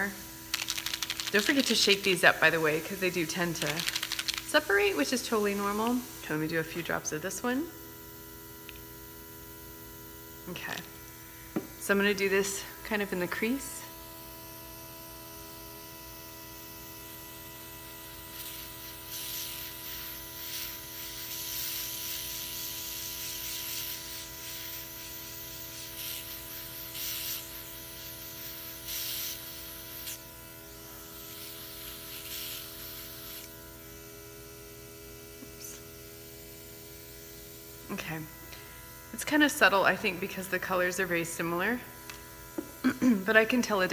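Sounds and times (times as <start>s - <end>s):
airbrush hissing sprays: 0.0s - 7.4s, 18.0s - 33.6s
small compressor humming: 0.0s - 43.9s.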